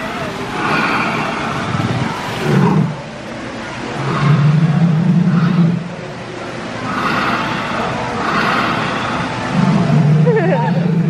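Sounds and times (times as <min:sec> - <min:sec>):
indoor public space ambience: 0:00.0 - 0:11.0
steady low hum: 0:00.0 - 0:11.0.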